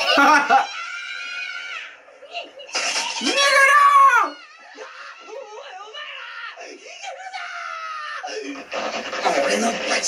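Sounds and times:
person screaming and wailing: 0:03.2 - 0:08.4.

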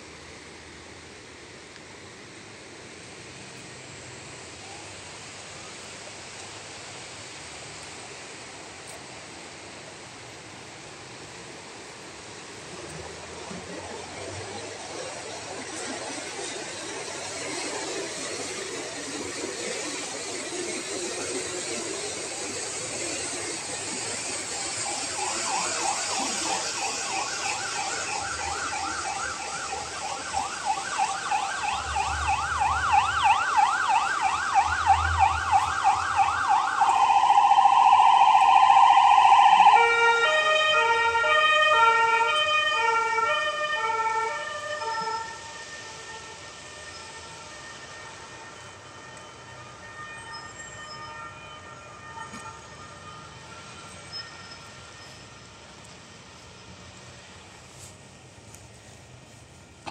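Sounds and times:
outdoor background noise: 0:00.0 - 0:59.9
emergency vehicle siren: 0:11.2 - 0:59.0.

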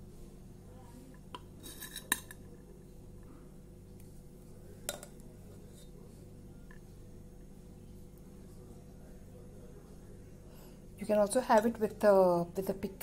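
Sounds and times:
metal spoon clinking on pot: 0:01.7 - 0:02.4, 0:04.9 - 0:05.2.

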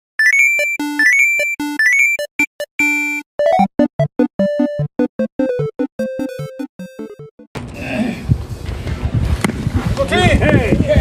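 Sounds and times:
electronic jingle with beeping notes: 0:00.2 - 0:07.5.

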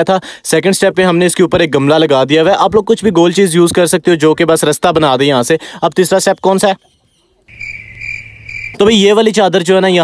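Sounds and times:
insect trilling: 0:07.5 - 0:08.9.

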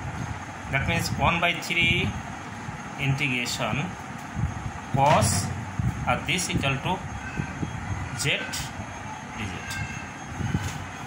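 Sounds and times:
steady low rumble: 0:00.0 - 0:09.0.

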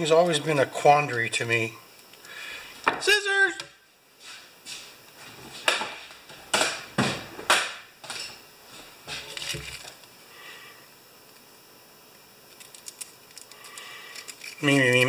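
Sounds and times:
rustles and knocks on workbench: 0:05.3 - 0:08.3.

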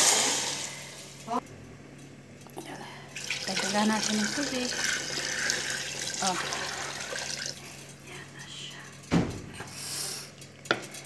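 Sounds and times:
water pouring into metal pot: 0:03.1 - 0:07.9.

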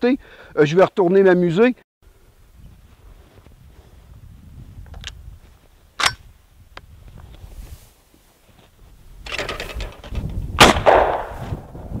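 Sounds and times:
shotgun shot with echo: 0:10.6 - 0:11.4.

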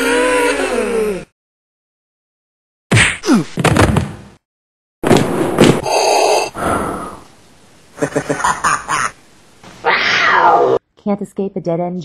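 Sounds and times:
loud high falling cry: 0:09.8 - 0:10.8.

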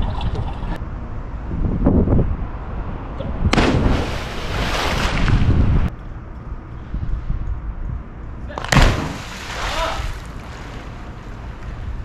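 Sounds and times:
pool water splashing: 0:03.6 - 0:05.4, 0:08.6 - 0:12.0.

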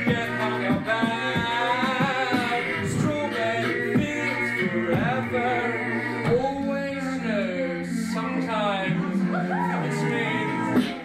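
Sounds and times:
beatboxed beat: 0:00.0 - 0:11.0
looped a cappella vocals: 0:00.0 - 0:11.0
man singing: 0:00.0 - 0:11.0.

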